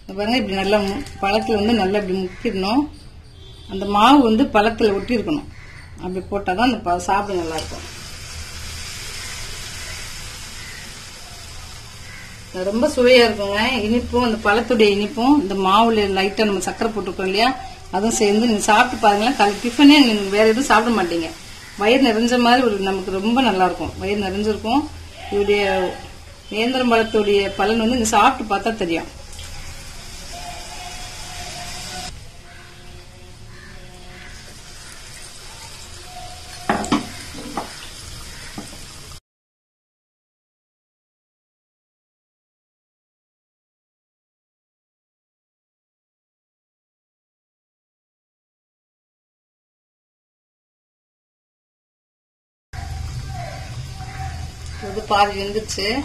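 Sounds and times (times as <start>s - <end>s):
food sizzling in hot oil: 7.1s - 39.2s.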